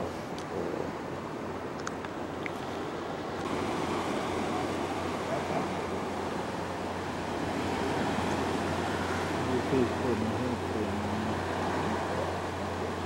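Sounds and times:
ocean surf washing: 0.0 - 13.0
wind: 0.0 - 13.0.

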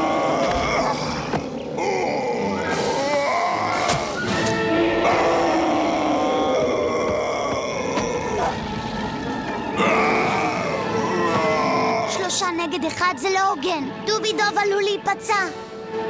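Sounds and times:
animals grunting and growling: 0.0 - 12.4
background music: 0.0 - 16.0.

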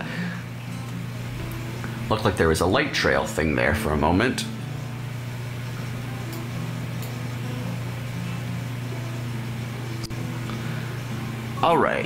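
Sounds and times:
even hiss: 0.0 - 12.0
steady low hum: 0.0 - 12.0.

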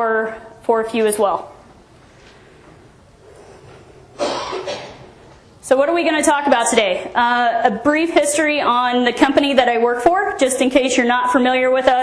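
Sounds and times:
faint room noise: 0.0 - 12.0
person coughing: 4.2 - 5.2.

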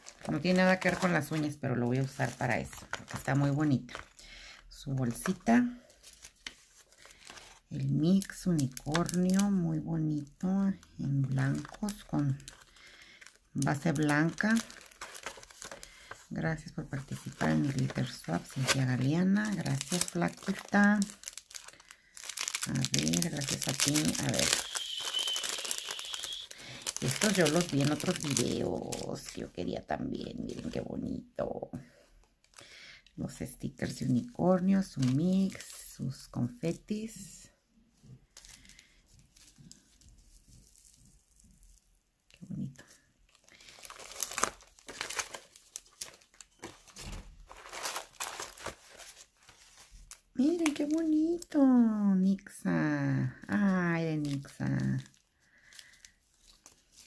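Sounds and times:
plastic packet crinkling: 0.0 - 29.6, 33.8 - 36.0, 38.3 - 51.6, 53.3 - 57.0.

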